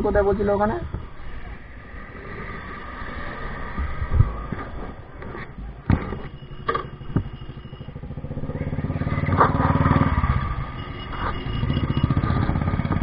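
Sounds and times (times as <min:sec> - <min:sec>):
motorcycle engine running: 0:06.0 - 0:13.0.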